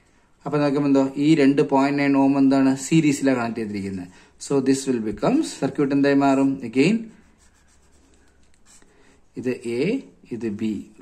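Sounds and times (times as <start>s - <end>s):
marker drawing on paper: 6.6s - 9.2s.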